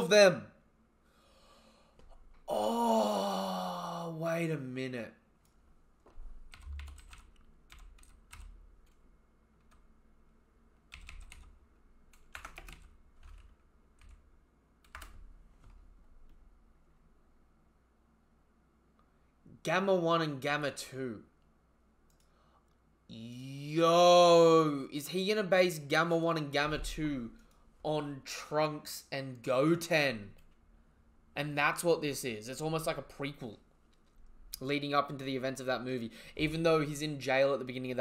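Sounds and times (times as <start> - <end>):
man's voice: 2.5 - 5.1, 23.1 - 27.3, 34.6 - 38.0
computer keys clicking: 6.5 - 9.0, 10.9 - 14.2, 14.8 - 16.4.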